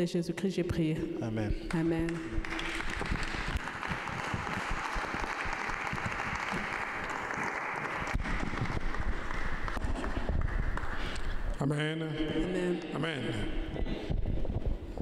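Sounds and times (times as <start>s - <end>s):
congregation applauding: 2.4s - 11.4s.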